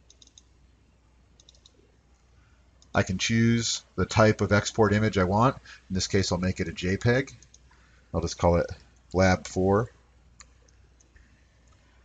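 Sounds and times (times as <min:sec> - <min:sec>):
computer mouse clicks: 0:00.0 - 0:00.6, 0:01.4 - 0:02.9, 0:07.3 - 0:07.7, 0:10.4 - 0:12.0.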